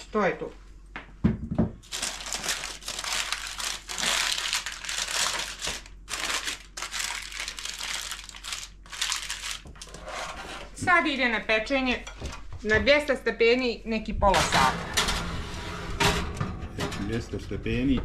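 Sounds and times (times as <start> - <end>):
baking paper crinkling: 1.8 - 10.0.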